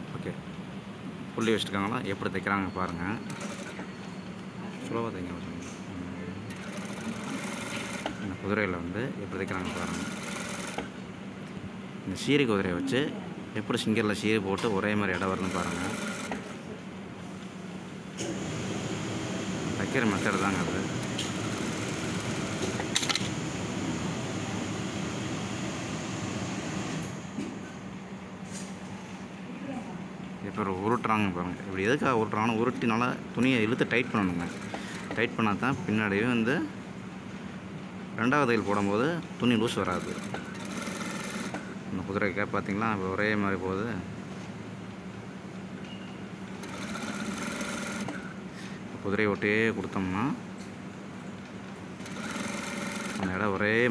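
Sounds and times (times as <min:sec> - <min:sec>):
sewing machine running: 0:03.2 - 0:03.9, 0:06.5 - 0:08.2, 0:09.6 - 0:10.9, 0:15.1 - 0:16.6, 0:18.2 - 0:27.3, 0:33.6 - 0:35.2, 0:39.8 - 0:41.7, 0:46.6 - 0:48.3, 0:52.0 - 0:53.3
low motor hum: 0:18.3 - 0:27.6.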